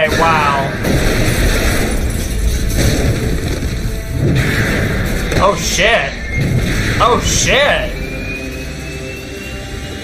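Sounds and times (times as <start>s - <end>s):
booming explosions: 0.0s - 8.4s.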